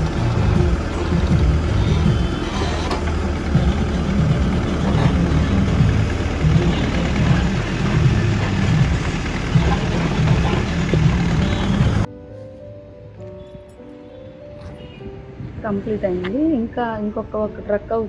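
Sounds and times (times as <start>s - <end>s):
diesel engine running under load: 0.0s - 12.1s.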